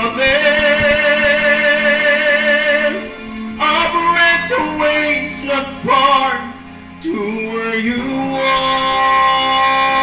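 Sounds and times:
karaoke backing track: 0.0 - 10.0
man singing with vibrato: 0.0 - 10.0.

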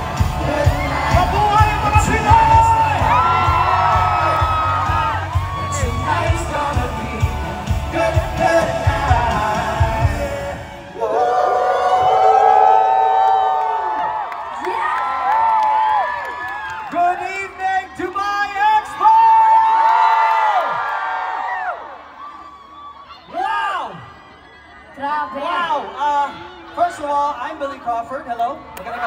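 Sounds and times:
concert beat and bass: 0.0 - 10.8
crowd whooping and screaming: 0.0 - 29.0.

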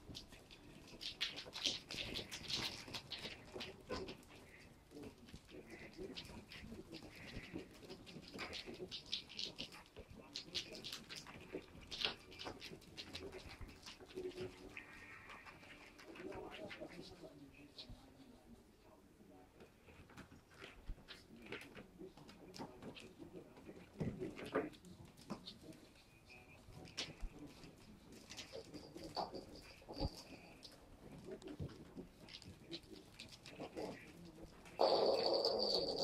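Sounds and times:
clicks and scratches in tube: 0.0 - 18.1, 19.6 - 36.0.

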